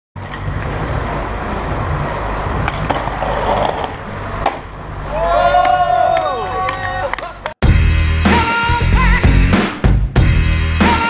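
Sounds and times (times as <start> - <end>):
skateboard wheels rolling on pavement: 0.2 - 7.5
skateboard grinding on ledge: 0.5 - 4.7.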